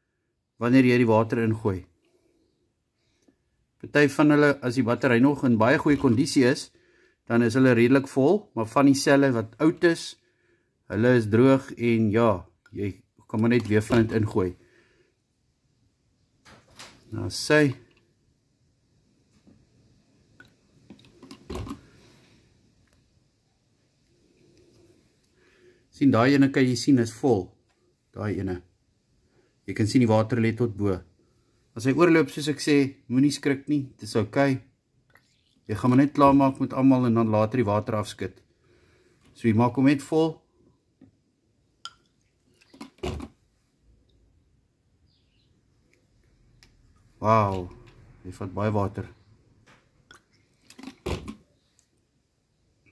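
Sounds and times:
water pouring into funnel: 0:35.1 - 0:36.2.

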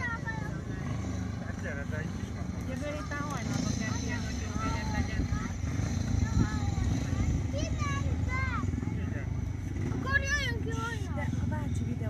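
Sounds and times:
motorcycle engine rumble: 0:00.0 - 0:12.0.

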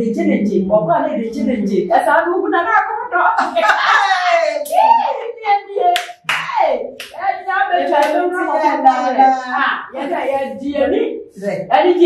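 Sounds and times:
women exclaiming and laughing: 0:03.0 - 0:10.0.

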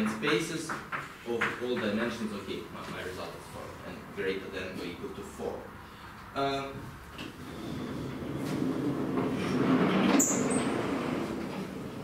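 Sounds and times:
chalkboard panels rolling on tracks: 0:07.2 - 0:12.0.

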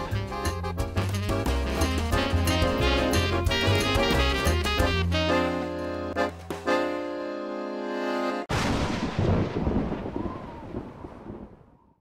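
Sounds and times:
rolling thunder rumble: 0:08.5 - 0:12.0.

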